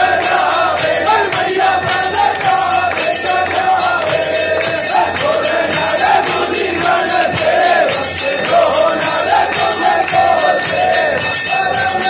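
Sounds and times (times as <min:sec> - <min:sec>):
crowd singing a hymn in unison: 0:00.0 - 0:12.0
steady drum beat: 0:00.0 - 0:12.0.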